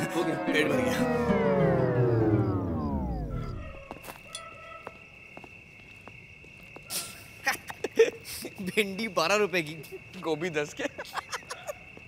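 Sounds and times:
film music slowing down: 0:00.0 - 0:04.1
faint steady high tone: 0:00.0 - 0:04.4.

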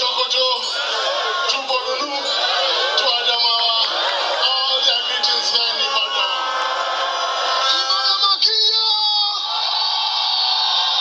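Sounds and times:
crowd shouting along: 0:00.0 - 0:11.0.

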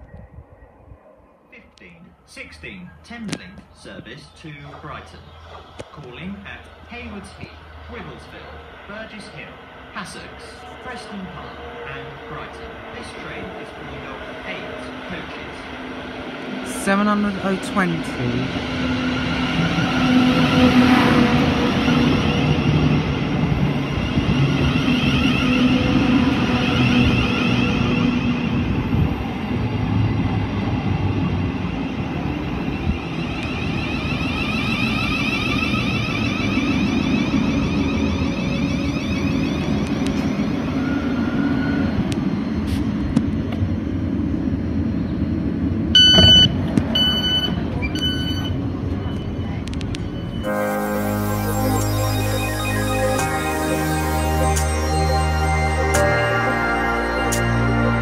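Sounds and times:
train hum and rumble: 0:00.0 - 0:58.0
train whine sliding in pitch: 0:06.2 - 0:58.0
short pitched beeps: 0:46.0 - 0:49.4.

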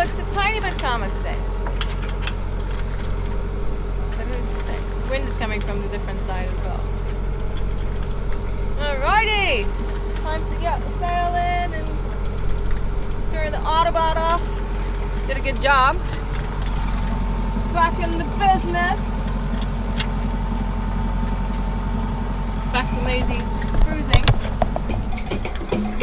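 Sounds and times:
steady low drone: 0:00.0 - 0:26.0.

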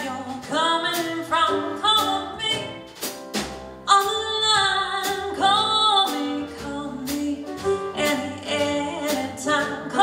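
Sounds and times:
woman singing: 0:00.0 - 0:02.8, 0:03.9 - 0:10.0
jazz band playing: 0:00.0 - 0:10.0.

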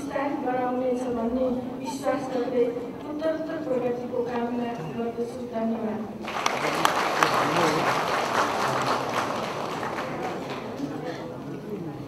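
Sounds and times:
audience applauding: 0:06.2 - 0:11.1.

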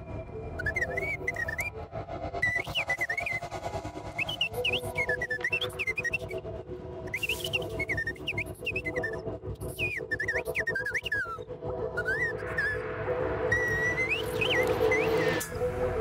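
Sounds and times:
whistle swooping chirps: 0:00.5 - 0:06.4, 0:07.0 - 0:16.0.

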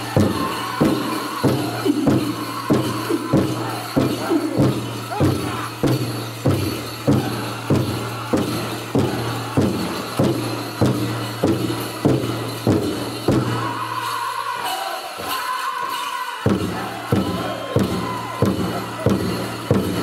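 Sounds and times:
big drum steady beat: 0:00.0 - 0:13.8, 0:16.5 - 0:20.0
drum group singing: 0:00.0 - 0:20.0.

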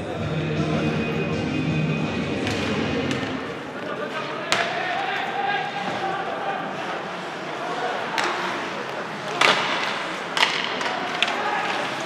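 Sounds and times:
crowd voices and chanting: 0:00.0 - 0:12.0
hockey sticks and puck clacking: 0:02.4 - 0:12.0.

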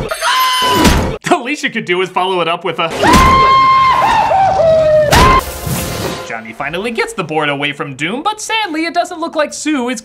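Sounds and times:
comic high-pitched scream: 0:00.0 - 0:00.9, 0:03.0 - 0:05.4.

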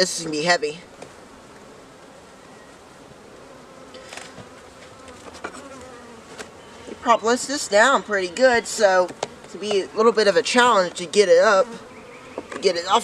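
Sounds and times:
honeybees buzzing: 0:00.0 - 0:13.0
faint clicks of hive box: 0:03.9 - 0:06.6, 0:09.0 - 0:09.8.

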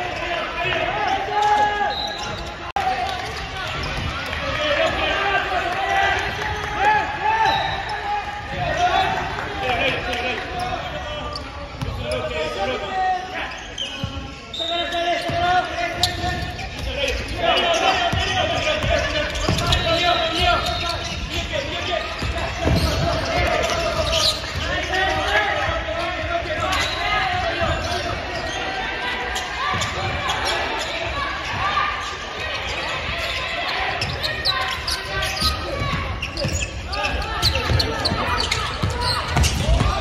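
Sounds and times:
players calling out: 0:00.0 - 0:40.0.

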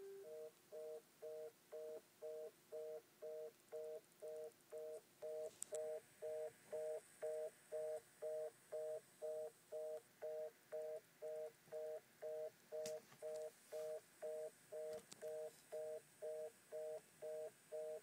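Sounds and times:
telephone busy tone: 0:00.0 - 0:03.0.

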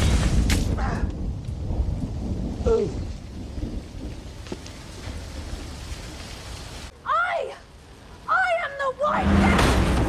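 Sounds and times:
deep rumble: 0:00.0 - 0:06.8.

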